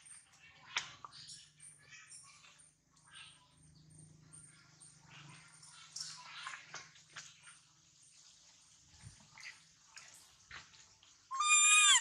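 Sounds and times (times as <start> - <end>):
baby monkey crying: 11.3 - 12.0.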